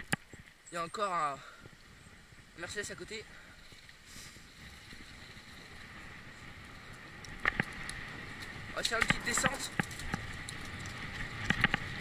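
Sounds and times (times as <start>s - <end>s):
bicycle rolling noise: 1.4s - 12.0s.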